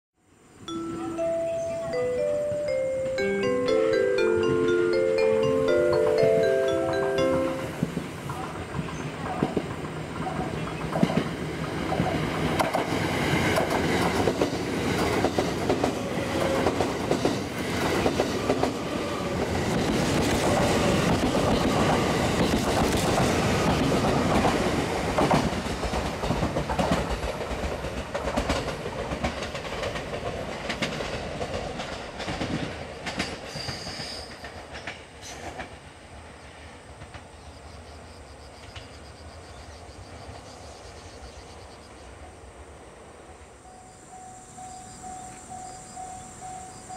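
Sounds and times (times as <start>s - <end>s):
train wheels clicking over rail joints: 5.8s - 35.9s.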